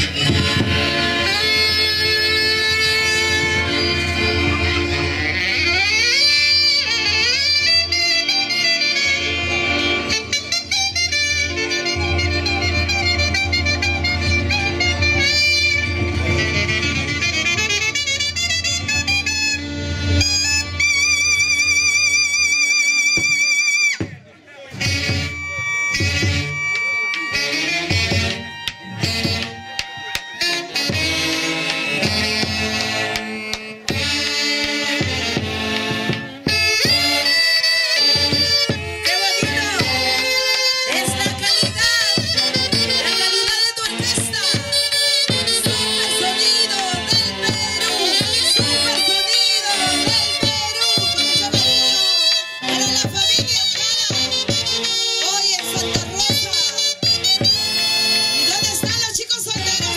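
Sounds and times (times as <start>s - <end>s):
steady bass: 0.0s - 7.3s
saxophones with heavy vibrato: 0.0s - 23.3s, 24.7s - 59.9s
live fiesta band music: 0.0s - 59.9s.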